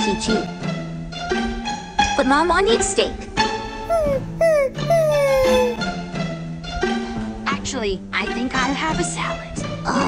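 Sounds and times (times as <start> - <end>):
dog-like whining: 3.9 - 5.8.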